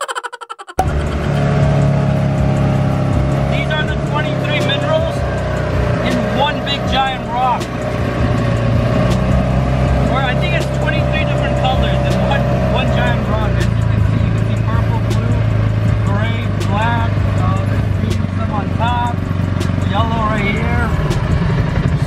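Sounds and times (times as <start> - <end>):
engine running at low speed: 0.8 - 22.0.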